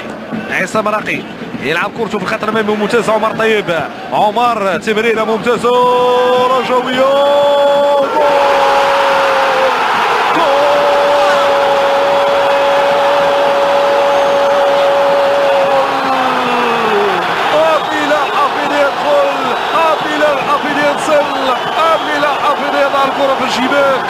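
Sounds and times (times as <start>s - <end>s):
stadium crowd cheering: 0.0s - 24.0s
commentator shouting excitedly: 14.5s - 24.0s.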